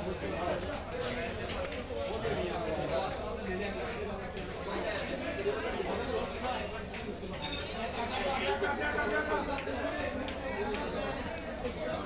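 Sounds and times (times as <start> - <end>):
people talking at once: 0.0 - 12.0.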